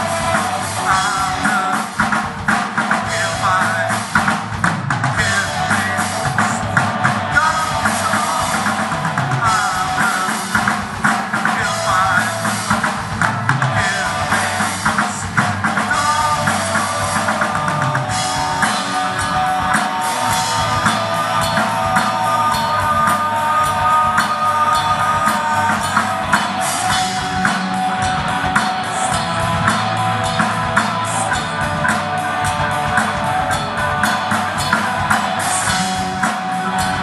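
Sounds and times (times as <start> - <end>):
rock band playing live: 0.0 - 37.0
bending melodic lead line: 5.1 - 10.6, 13.4 - 37.0.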